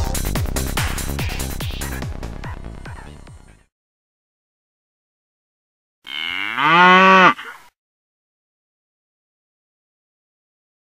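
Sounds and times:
cow mooing: 6.1 - 7.7.

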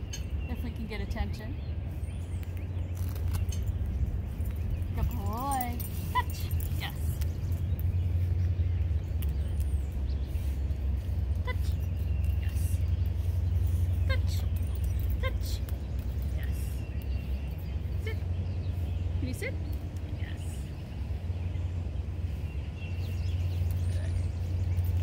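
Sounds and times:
low rumble: 0.0 - 25.0.

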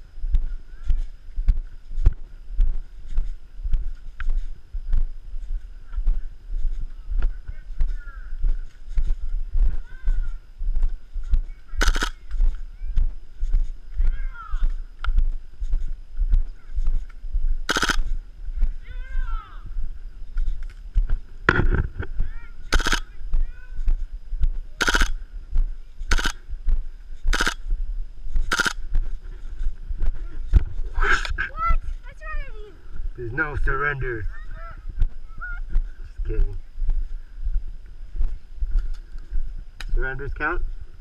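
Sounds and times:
footsteps on dry ground: 0.0 - 41.0
airsoft gun full-auto bursts: 11.8 - 12.2, 17.7 - 18.1, 22.7 - 23.1, 24.8 - 25.2, 26.1 - 26.4, 27.3 - 27.6, 28.4 - 28.8.

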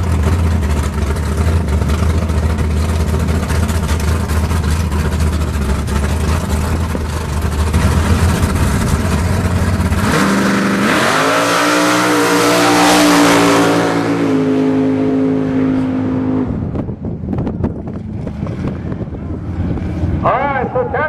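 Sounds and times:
car engine rumbling and revving: 0.0 - 21.0.

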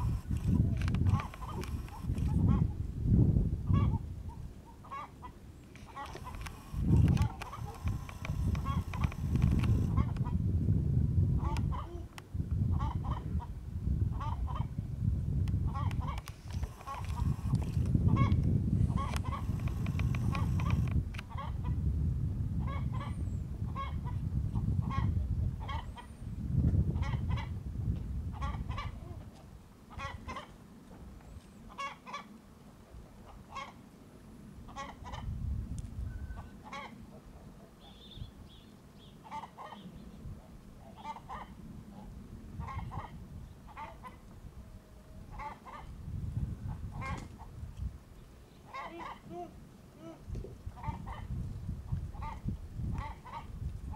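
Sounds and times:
chickens clucking: 0.0 - 2.7, 4.8 - 10.4, 15.7 - 21.6.

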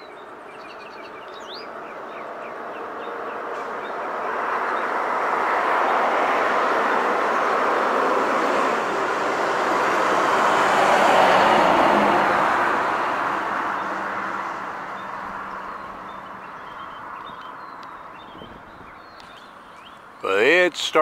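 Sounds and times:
road vehicle passing by: 0.0 - 21.0.

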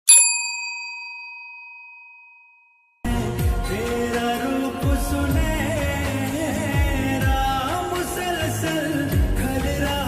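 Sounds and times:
bell ding: 0.1 - 3.1.

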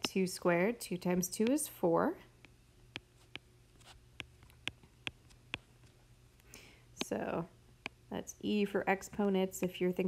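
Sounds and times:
stylus tapping on tablet screen: 1.3 - 1.6, 2.4 - 6.0, 7.0 - 7.2.

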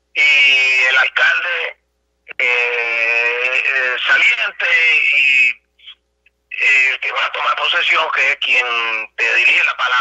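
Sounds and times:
man speaking over telephone: 0.2 - 10.0.

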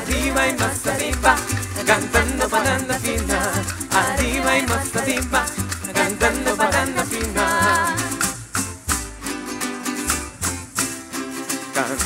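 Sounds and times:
person singing: 0.0 - 8.4, 11.6 - 12.0
low bass line: 0.0 - 11.0
maracas shaking: 0.0 - 12.0
strummed plucked strings: 0.0 - 12.0.

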